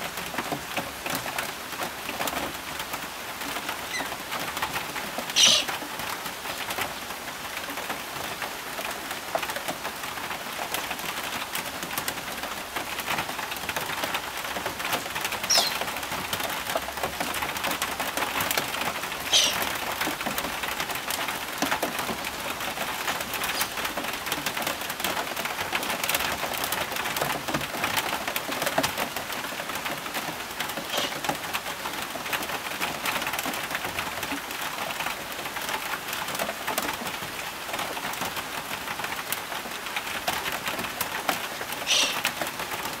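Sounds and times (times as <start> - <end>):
rain falling: 0.0 - 43.0
raindrops ticking: 0.0 - 43.0
high bird call: 5.4 - 5.7, 15.5 - 15.8, 19.3 - 19.7, 30.9 - 31.2, 41.9 - 42.2.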